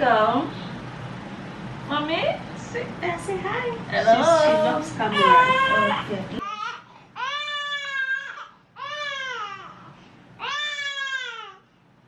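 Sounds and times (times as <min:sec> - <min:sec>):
baby crying: 0:05.1 - 0:11.6.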